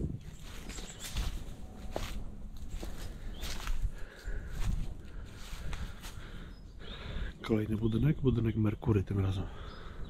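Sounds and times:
footsteps on dry leaves: 0.0 - 6.6.

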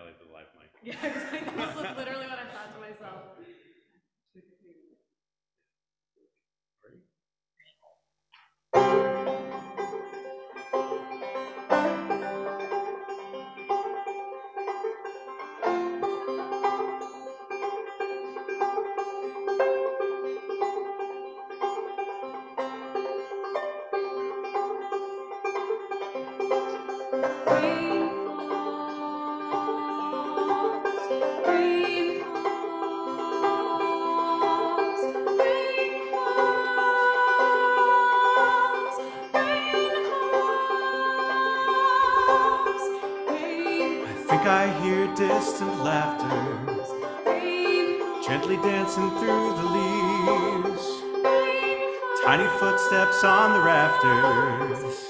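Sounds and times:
solo banjo picking: 8.7 - 55.0.

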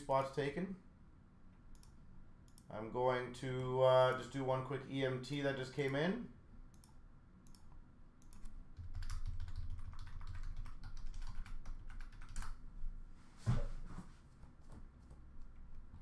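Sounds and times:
typing on computer keyboard: 8.2 - 12.6.

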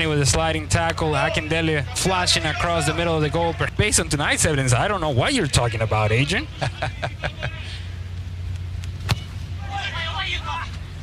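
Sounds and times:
low background hum: 0.0 - 11.0
soccer ball kick thud: 9.0 - 9.3
faint voices calling out: 9.3 - 11.0.

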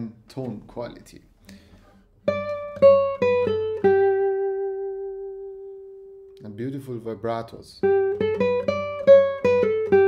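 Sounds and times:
classical guitar plucked notes: 2.2 - 6.5, 7.8 - 10.0.

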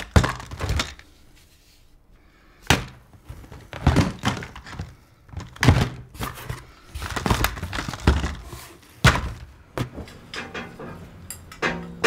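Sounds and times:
plastic tubs knocking together: 0.0 - 1.0, 2.6 - 10.0.

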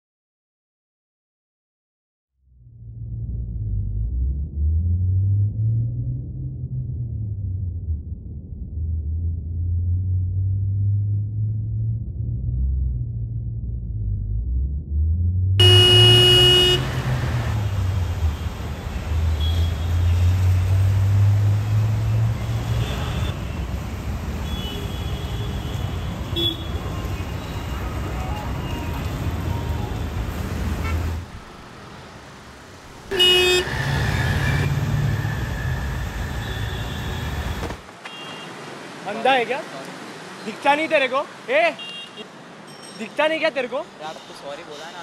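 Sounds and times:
road vehicles rumbling: 2.8 - 45.0
car horn blaring: 15.6 - 17.7, 19.3 - 20.1, 22.4 - 23.4, 24.4 - 27.1, 33.1 - 34.0, 36.4 - 38.5, 41.8 - 42.3.

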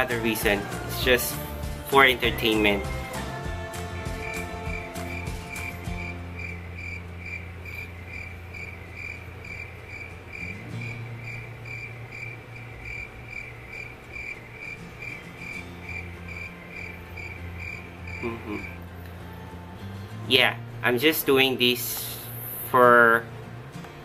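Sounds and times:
cricket chirping: 4.2 - 18.8.

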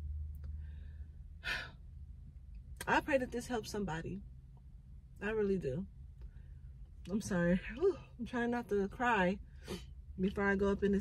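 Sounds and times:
woman sighing: 1.4 - 1.8
woman speaking: 2.8 - 4.2, 5.2 - 5.9, 7.1 - 9.4, 10.2 - 11.0.

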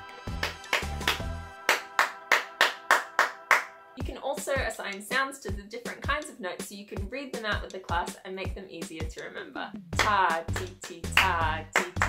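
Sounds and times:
soft background music: 0.0 - 12.0
hand claps: 0.3 - 3.7, 10.0 - 12.0.

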